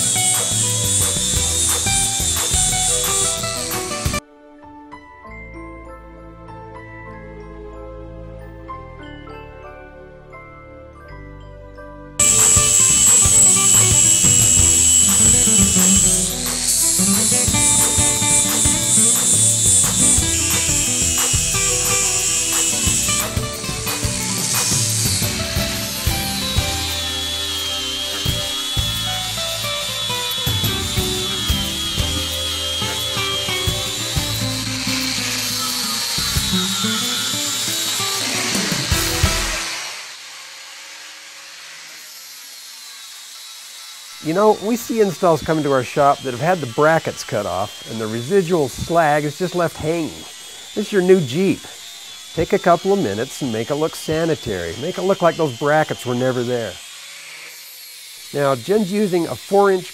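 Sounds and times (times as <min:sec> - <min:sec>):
angle grinder grinding steel: 0:00.0 - 0:04.2, 0:12.2 - 0:59.9
music with a beat: 0:00.0 - 0:04.2, 0:12.2 - 0:37.0.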